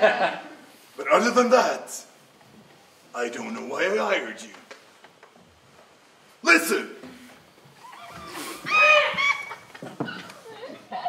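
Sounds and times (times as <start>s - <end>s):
person squealing: 7.8s - 9.6s.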